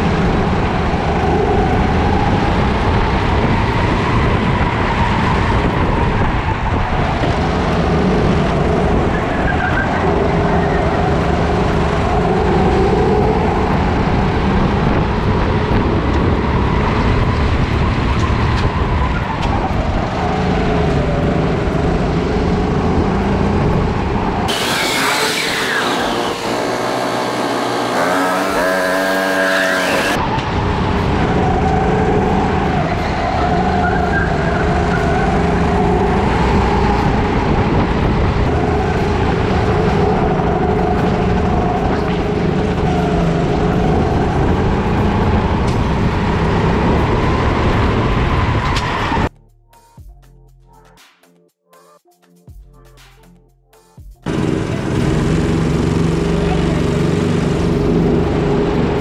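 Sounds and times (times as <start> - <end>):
kart engine running hard: 0.0 - 48.8, 54.2 - 59.0.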